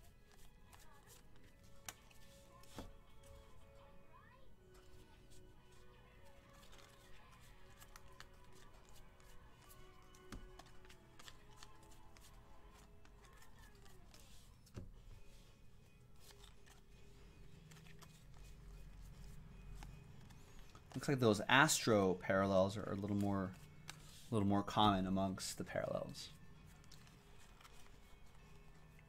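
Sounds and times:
faint background music: 0:00.0 - 0:29.0
trading cards flipping clicks: 0:10.1 - 0:14.8.

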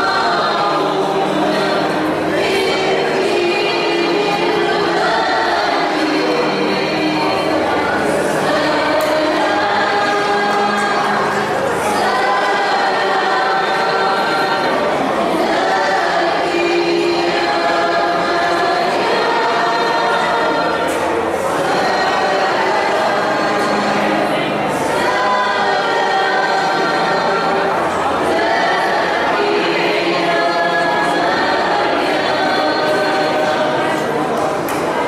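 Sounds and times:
choir singing a chant: 0:00.0 - 0:35.0.

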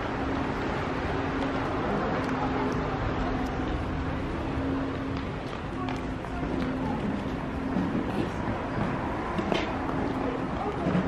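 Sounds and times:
street ambience hiss and rumble: 0:00.0 - 0:11.0.

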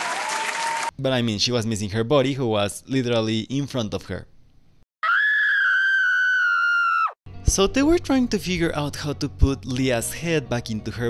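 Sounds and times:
long shrill scream: 0:05.0 - 0:07.2.

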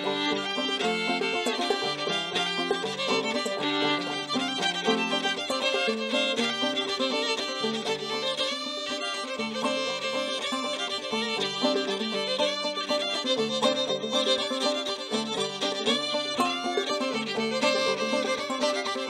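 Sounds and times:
banjo playing: 0:00.0 - 0:19.0
fiddle melody: 0:00.0 - 0:19.0.

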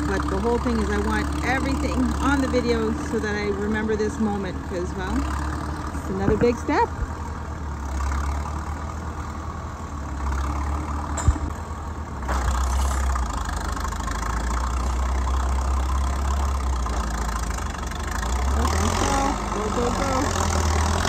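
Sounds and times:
bulldozer diesel engine drone: 0:00.0 - 0:21.0.

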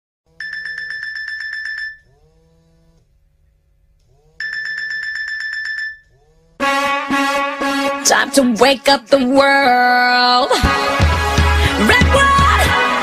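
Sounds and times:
electronic ringing tone with trill: 0:00.4 - 0:02.1, 0:04.4 - 0:06.1.

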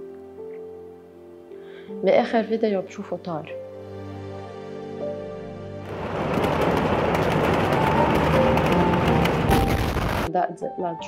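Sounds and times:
explosion blast wave rush: 0:05.9 - 0:10.3.

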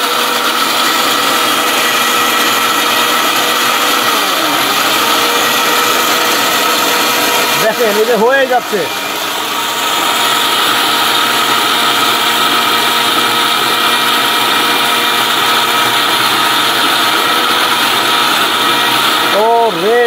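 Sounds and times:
mixer grinder whirring: 0:00.0 - 0:20.0.

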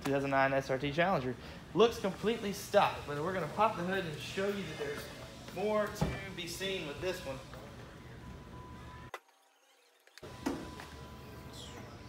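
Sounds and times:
workshop room tone: 0:00.0 - 0:12.0.

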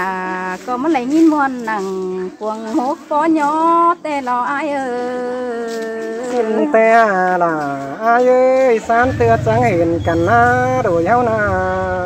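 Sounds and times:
person singing unaccompanied: 0:00.0 - 0:12.0.

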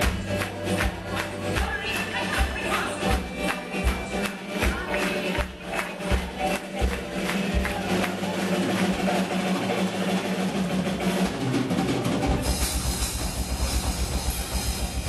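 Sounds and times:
bass guitar: 0:00.0 - 0:15.0
fast driving drum beat: 0:00.0 - 0:15.0.

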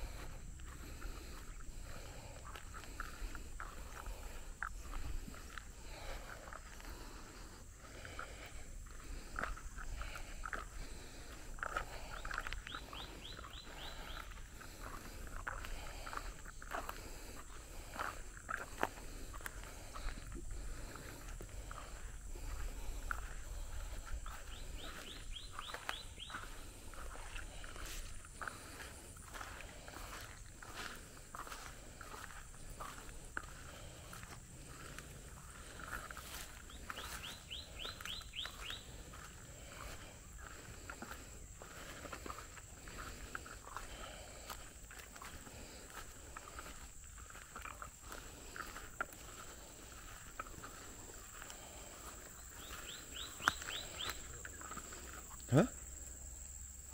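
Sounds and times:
footsteps through grass: 0:00.0 - 0:55.2.

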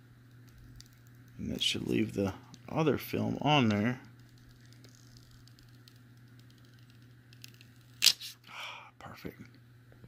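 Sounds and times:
steady low hum: 0:00.0 - 0:10.0
small ticks: 0:04.1 - 0:07.7
plastic film being peeled off: 0:04.2 - 0:08.4.

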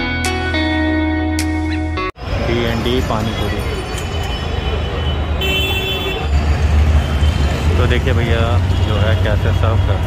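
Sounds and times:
road traffic rumble: 0:02.1 - 0:10.0
people talking: 0:02.4 - 0:03.8, 0:07.7 - 0:10.0.

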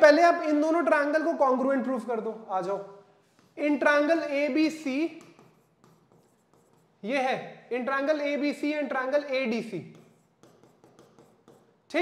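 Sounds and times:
stylus scratching on glass: 0:04.7 - 0:07.0, 0:09.9 - 0:11.8.

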